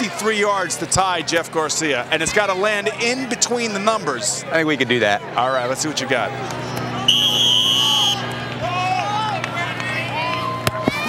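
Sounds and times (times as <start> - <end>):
faint crowd chatter: 0.0 - 11.0
high whistle blast: 7.1 - 8.3.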